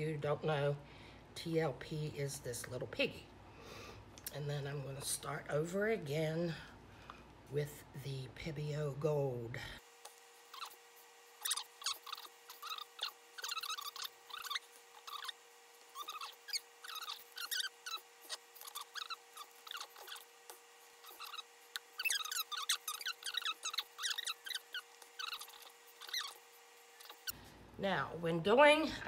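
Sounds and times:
faint steady hum: 0.0 - 29.0
gloved hands squeaking on plastic cups: 10.1 - 27.4.

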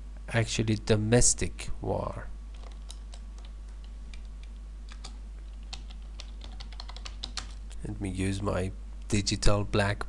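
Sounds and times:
steady low hum: 0.0 - 10.0
computer keyboard and mouse clicking: 2.5 - 7.7.

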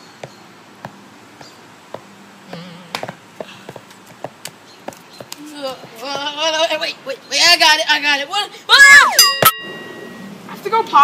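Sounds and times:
sandal footsteps on stone: 0.2 - 6.7.

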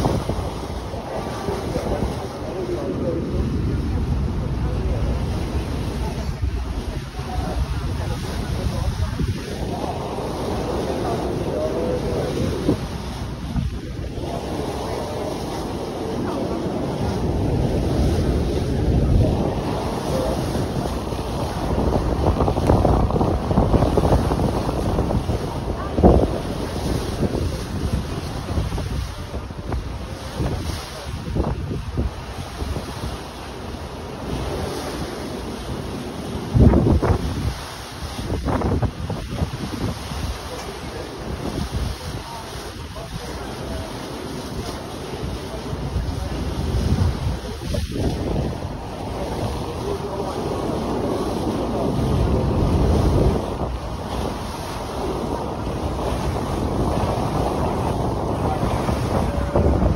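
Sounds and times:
water rushing alongside boat: 0.0 - 59.9
wind buffeting microphone: 0.0 - 59.9.

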